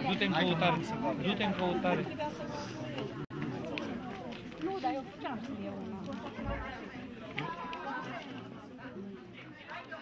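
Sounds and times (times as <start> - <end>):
overlapping chatter: 0.0 - 10.0.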